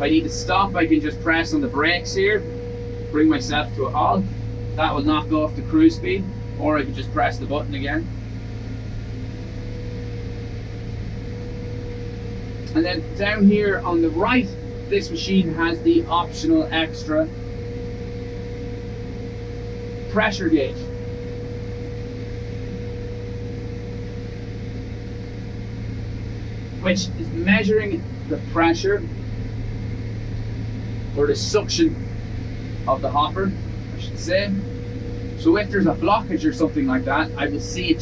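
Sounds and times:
constant tone: 0.0s - 38.0s
low engine drone: 0.0s - 38.0s
thin steady whine: 0.0s - 38.0s.

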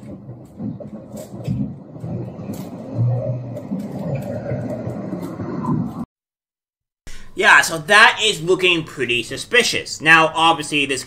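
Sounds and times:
low rumbling noise: 0.0s - 6.1s.

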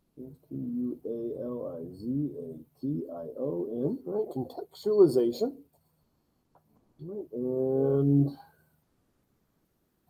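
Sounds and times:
man speaking: 0.1s - 5.7s, 7.0s - 8.6s.

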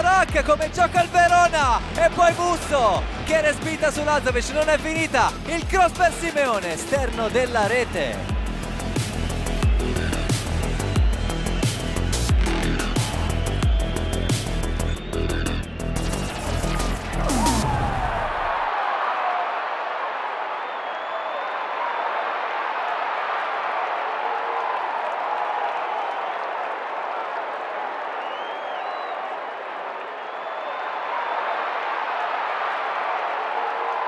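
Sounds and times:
electronic music with heavy beat: 0.0s - 18.7s
stadium crowd noise: 0.0s - 34.0s
faint high whistles: 20.6s - 21.5s, 28.2s - 29.2s.

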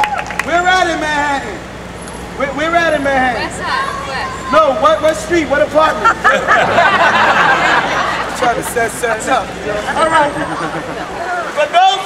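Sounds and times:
street traffic: 0.0s - 12.0s
man shouting: 2.7s - 6.0s, 11.2s - 12.0s.

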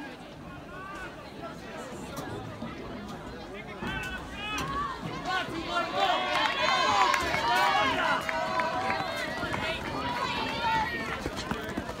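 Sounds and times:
spectators yelling: 4.3s - 11.1s
runners' footfalls on track: 4.7s - 12.0s.

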